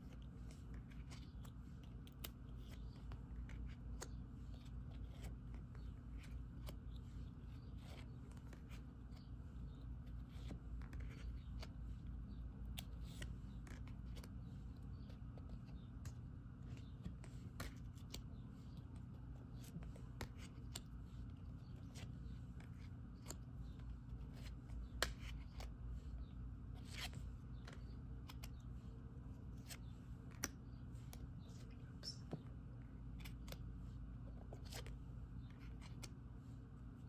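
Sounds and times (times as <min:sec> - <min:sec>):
cards flipping and sliding: 0:00.0 - 0:26.1, 0:26.8 - 0:32.4, 0:33.1 - 0:36.2
faint low hum: 0:00.0 - 0:37.0.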